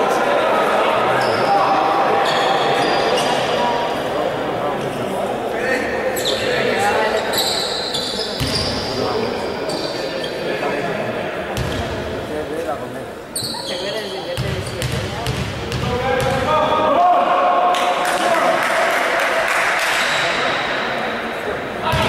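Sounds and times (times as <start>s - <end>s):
indistinct voices echoing: 0.0s - 22.0s
basketball bouncing on wooden court: 14.4s - 16.4s.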